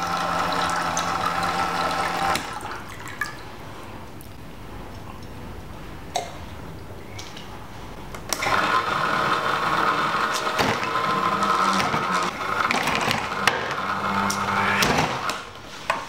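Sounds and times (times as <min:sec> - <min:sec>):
electric water pump whirring: 0:00.0 - 0:02.6, 0:08.3 - 0:15.4.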